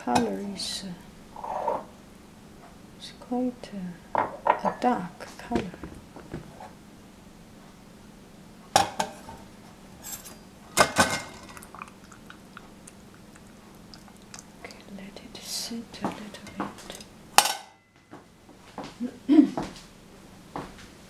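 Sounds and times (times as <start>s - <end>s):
dishes and utensils clinking: 10.0s - 12.3s, 16.1s - 18.0s.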